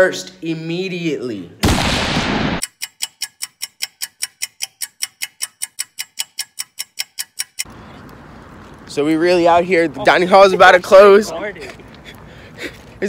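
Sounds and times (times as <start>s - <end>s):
clock ticking fast: 2.6s - 7.7s.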